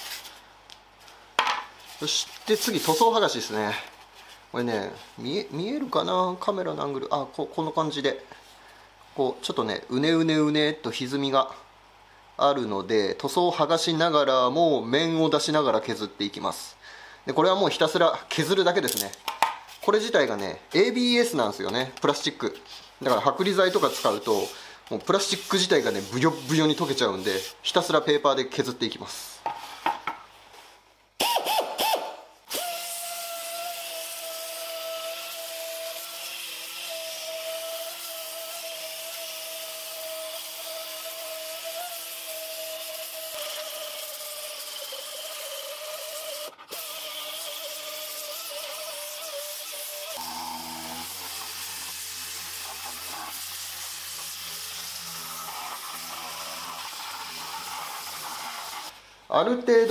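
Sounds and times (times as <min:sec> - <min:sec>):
pneumatic sander whine and hiss: 0:31.2 - 0:59.0.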